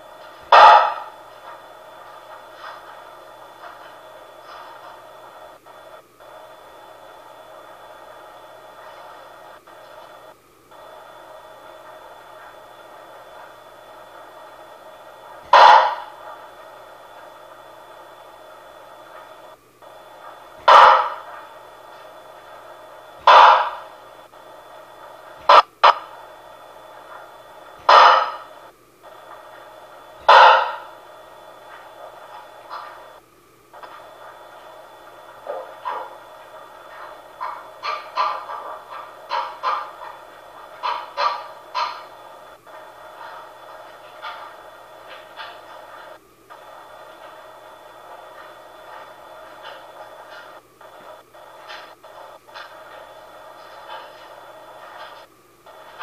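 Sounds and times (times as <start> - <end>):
baby monitor hiss: 0.0 - 33.2, 33.8 - 56.0.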